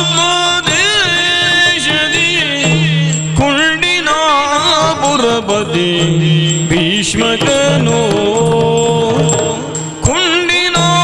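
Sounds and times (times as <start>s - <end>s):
drum strokes: 0.0s - 11.0s
person singing ornamented vocal line: 0.0s - 11.0s.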